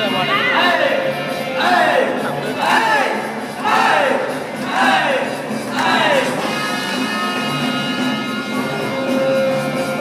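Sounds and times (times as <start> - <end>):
crowd shouting together: 0.3 - 6.4.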